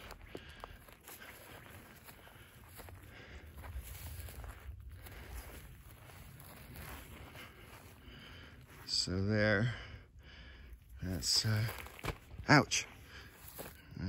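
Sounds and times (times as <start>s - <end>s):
faint low rumble: 0.0s - 12.0s
footsteps on dry grass: 0.0s - 14.0s.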